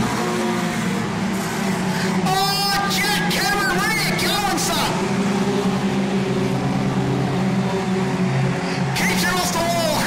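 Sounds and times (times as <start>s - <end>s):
race car engines humming: 0.0s - 10.0s.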